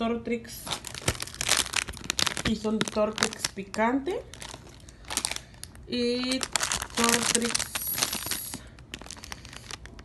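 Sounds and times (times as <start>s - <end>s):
plastic chip bag crackling: 0.5s - 10.0s.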